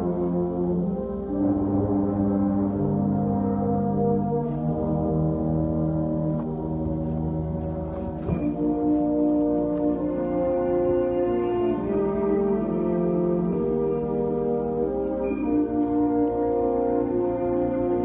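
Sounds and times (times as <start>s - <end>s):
concert band playing sustained chords: 0.0s - 18.0s.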